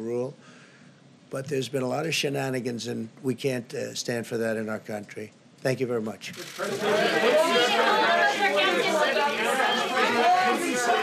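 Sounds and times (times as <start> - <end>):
overlapping voices talking: 6.4 - 11.0.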